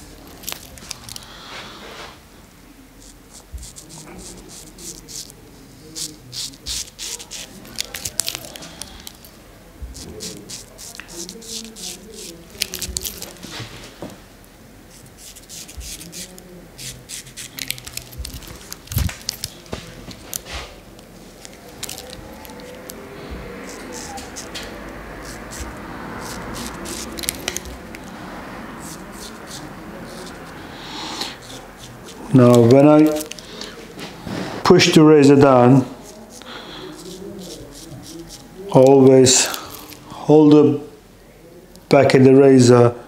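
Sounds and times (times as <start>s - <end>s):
razor scraping beard stubble: 3.0s - 13.6s, 14.9s - 20.8s, 21.4s - 33.6s, 35.9s - 40.0s.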